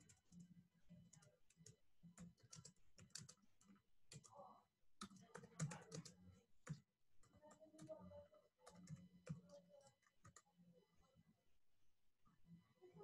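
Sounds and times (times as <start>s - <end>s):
computer keyboard typing: 0.0s - 4.4s, 5.0s - 8.0s, 8.6s - 10.5s.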